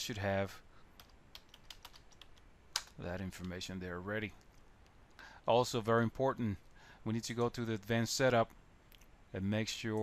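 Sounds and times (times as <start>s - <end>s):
computer keyboard typing: 1.0s - 3.5s.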